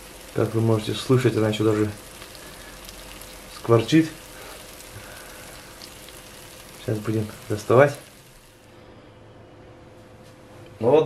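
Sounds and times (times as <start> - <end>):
fish sizzling softly in oil: 0.0 - 8.8.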